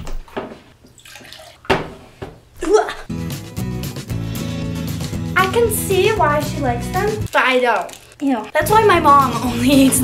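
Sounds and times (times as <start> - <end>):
water sloshing in pitcher: 0.9 - 1.9.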